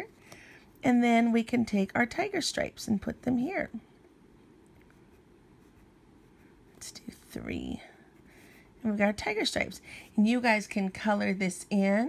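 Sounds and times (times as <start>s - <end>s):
pencil scratching on paper: 4.8s - 9.5s.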